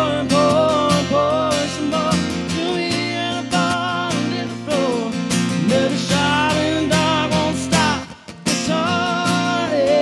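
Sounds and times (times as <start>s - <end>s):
strummed acoustic guitar: 0.0s - 10.0s.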